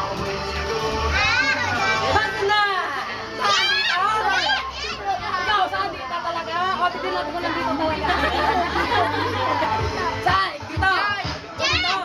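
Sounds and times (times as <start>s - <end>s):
young children shouting and squealing: 1.0s - 2.3s, 3.4s - 5.5s, 11.5s - 12.0s.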